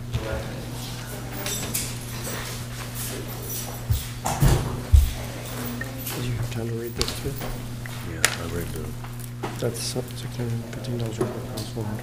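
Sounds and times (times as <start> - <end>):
murmured voices: 0.0 - 12.0.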